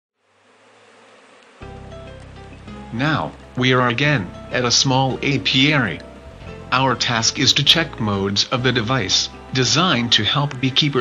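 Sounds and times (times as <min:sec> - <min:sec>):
bees buzzing: 0:00.2 - 0:11.0
music with held tones: 0:01.5 - 0:11.0.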